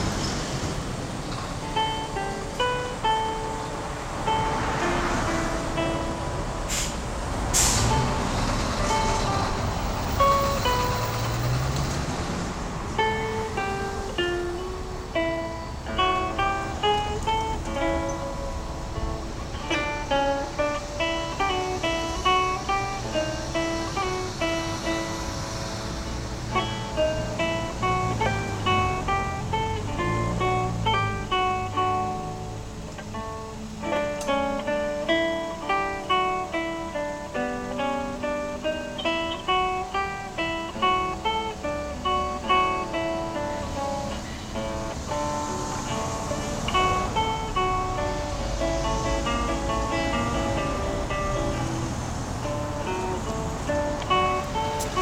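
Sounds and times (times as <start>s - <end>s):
fingerstyle acoustic guitar: 0.0s - 55.0s.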